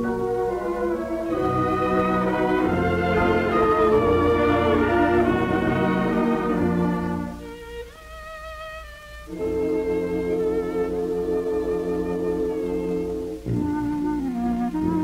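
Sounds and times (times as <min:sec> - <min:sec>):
bowed strings: 0:00.0 - 0:08.6
dance orchestra playing waltz: 0:00.0 - 0:15.0.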